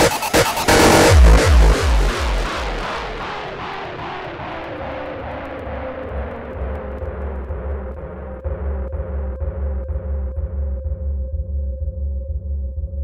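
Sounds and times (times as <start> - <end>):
pounding kick drums: 0.0 - 3.3.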